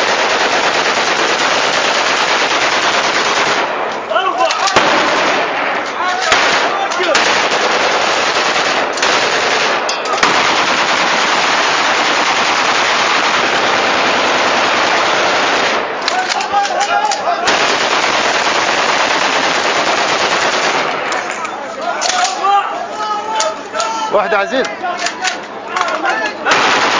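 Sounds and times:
rapid gunfire: 0.0s - 3.9s, 4.5s - 16.2s, 17.5s - 21.1s, 26.5s - 26.9s
voices: 3.8s - 10.3s, 15.9s - 18.3s, 20.8s - 26.9s.

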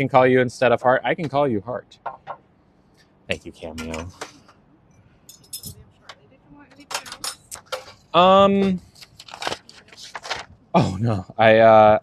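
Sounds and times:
light jingling clinks: 5.3s - 5.8s.

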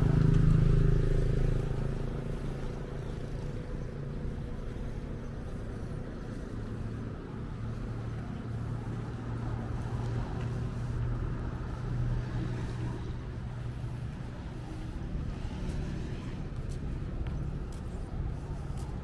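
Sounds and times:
vehicle engine running: 0.0s - 19.0s.

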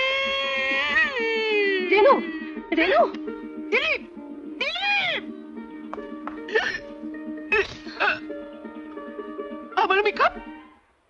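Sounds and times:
woman wailing: 6.5s - 6.9s, 7.5s - 8.3s.

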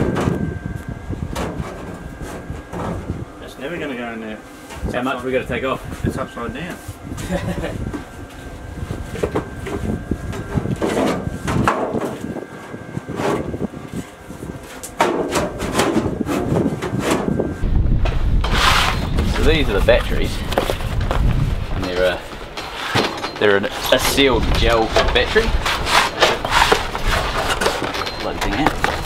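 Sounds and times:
steady low rumble: 0.0s - 14.8s, 15.6s - 22.7s.

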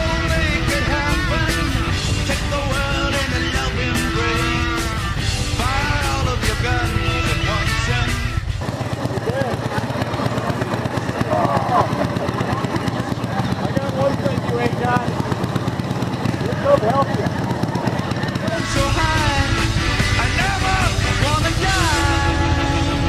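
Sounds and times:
man's voice: 0.0s - 8.4s, 18.4s - 23.0s
background music: 0.0s - 9.0s, 18.2s - 23.0s
motorcycle engines at low speed: 0.0s - 23.0s.

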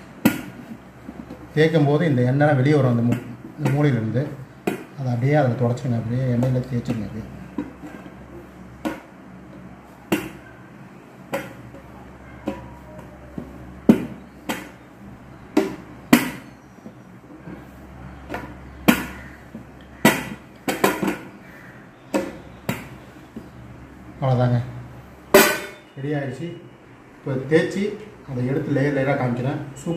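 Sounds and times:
rolling pin clacking on steel plate: 5.7s - 10.5s, 11.2s - 14.8s, 18.2s - 21.4s.

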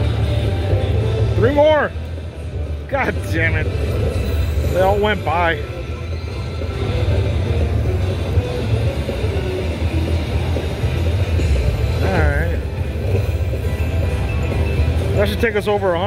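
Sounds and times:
slot machine music: 0.0s - 16.0s
slot machine reel-spin sounds: 3.0s - 16.0s.

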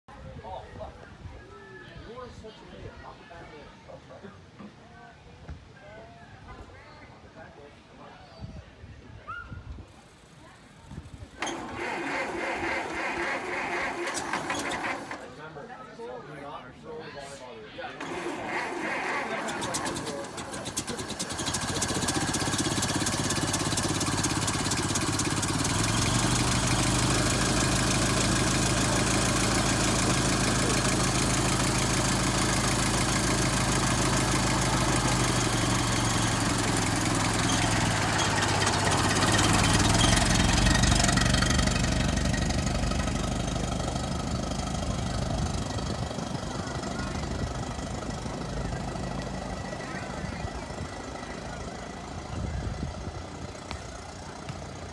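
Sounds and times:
old car engine idling: 11.1s - 15.4s, 18.0s - 54.9s.

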